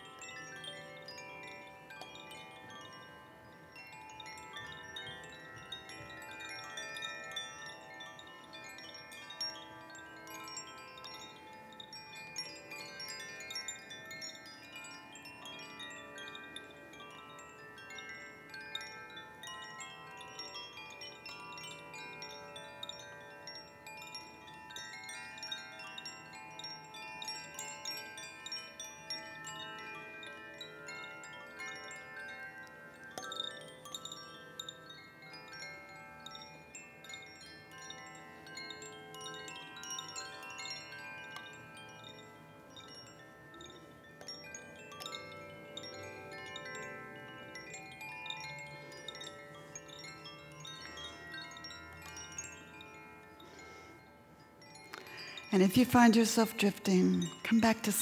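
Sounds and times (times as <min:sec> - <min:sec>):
chimes ringing: 0:00.0 - 0:58.0.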